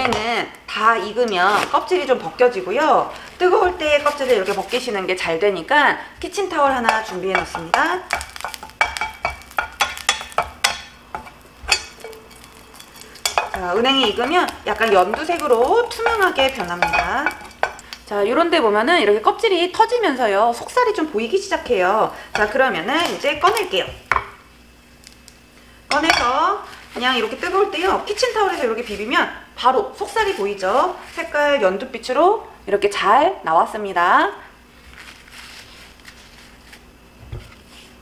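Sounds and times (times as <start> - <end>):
faint sizzle: 0.0 - 38.0
nuts clicking against a pan: 6.7 - 18.1
spatula knock on pan: 6.9 - 12.2.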